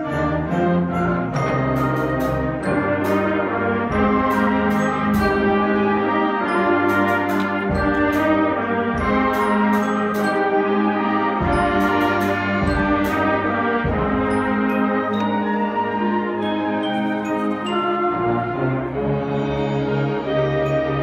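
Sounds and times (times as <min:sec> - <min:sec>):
concert band playing: 0:00.0 - 0:21.0.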